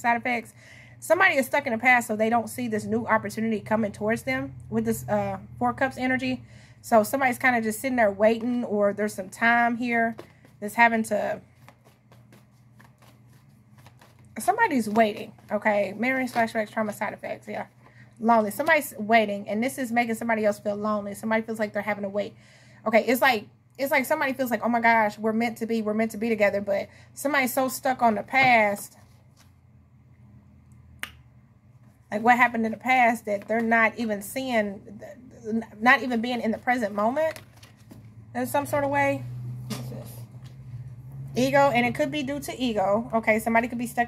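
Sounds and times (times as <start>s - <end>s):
faint low room hum: 0.0s - 44.0s
cards being shuffled: 10.1s - 10.8s, 11.4s - 17.0s, 35.9s - 38.2s.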